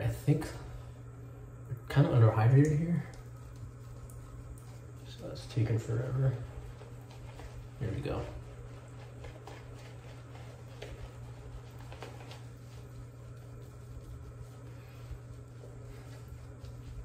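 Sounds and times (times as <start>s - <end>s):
steady low hum: 0.0s - 17.0s
shaving brush scrubbing lather: 1.9s - 17.0s.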